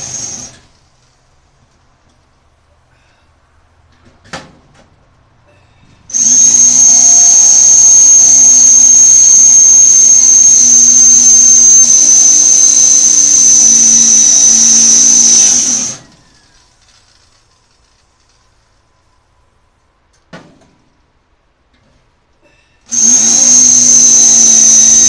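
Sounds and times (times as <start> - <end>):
electric drill drilling into metal: 0.0 - 0.6, 6.1 - 16.3, 22.9 - 25.0.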